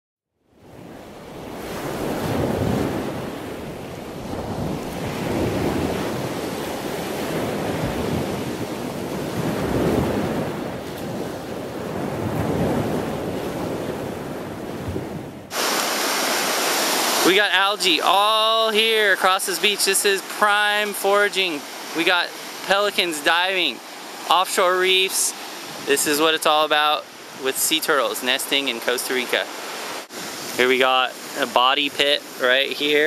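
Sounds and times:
ocean surf on a beach: 0.5 - 33.0
even hiss: 15.5 - 33.0.

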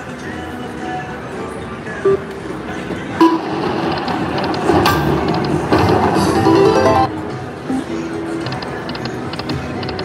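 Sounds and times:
slot machine reel-spin sounds: 3.2 - 7.1
slot machine game music: 3.2 - 8.0.

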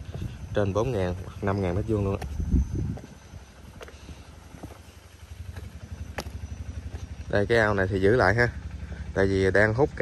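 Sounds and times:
engine running with low throb: 0.0 - 10.0.

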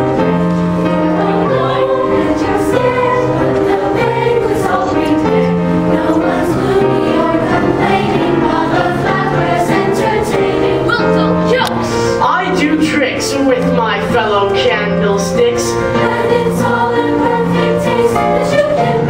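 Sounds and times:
choir singing: 0.0 - 19.0.

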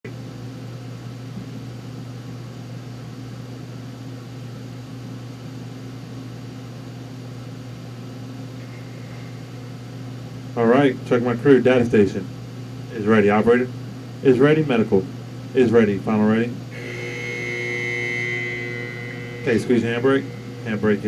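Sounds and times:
low machine hum with hiss: 0.1 - 21.0.

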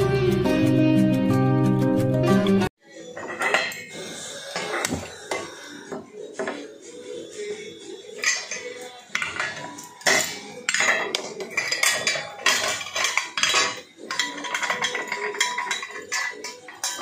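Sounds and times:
metal plates clinking and clattering: 3.1 - 5.5, 8.1 - 17.0
sharp metallic clanks: 8.2 - 17.0.

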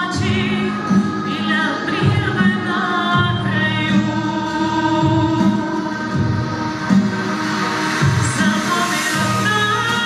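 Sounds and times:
musical accompaniment: 0.0 - 10.0
woman singing into a microphone: 0.0 - 10.0.

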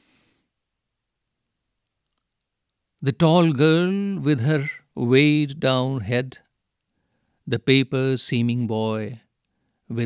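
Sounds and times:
faint clicks: 1.6 - 2.8.

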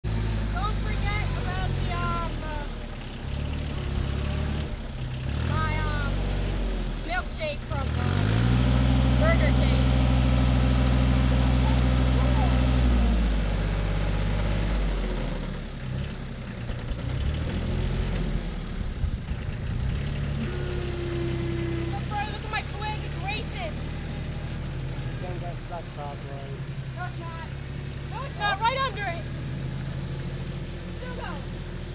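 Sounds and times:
tractor engine running and revving: 0.0 - 31.9.

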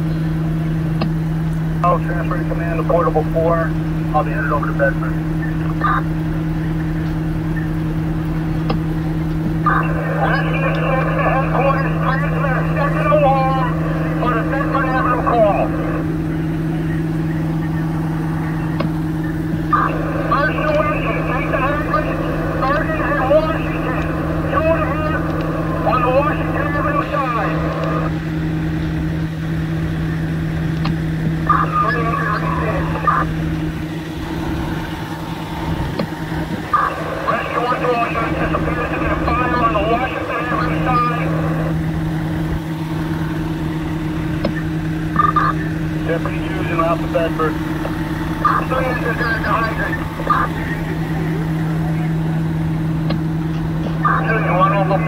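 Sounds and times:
diesel engine idling: 0.0 - 55.0
indistinct radio voices: 0.0 - 55.0.

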